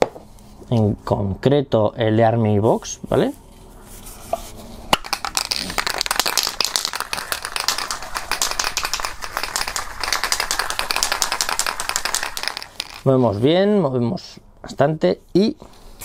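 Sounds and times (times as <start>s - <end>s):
aerosol can rattling when shaken: 5.0s - 13.3s.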